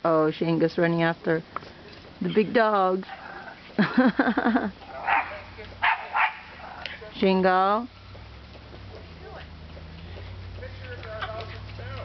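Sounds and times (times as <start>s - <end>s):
dog barking: 4.9s - 6.9s.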